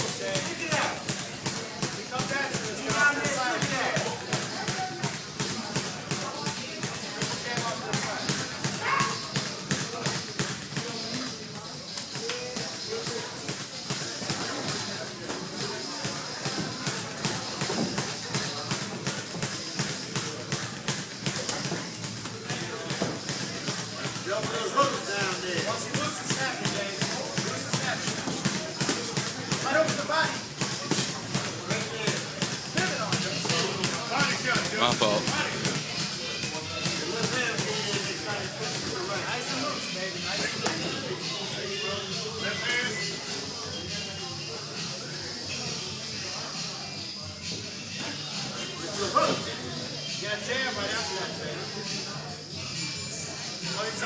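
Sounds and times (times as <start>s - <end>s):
footwork on ring canvas: 0.0s - 39.6s.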